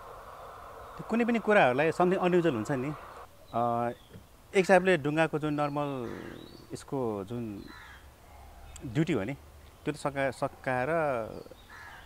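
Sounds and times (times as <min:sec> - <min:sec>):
bird calling faintly: 0:00.0 - 0:09.0.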